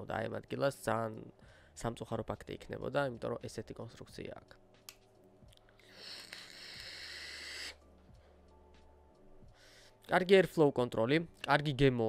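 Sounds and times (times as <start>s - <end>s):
hiss of vape inhale: 5.8s - 7.8s.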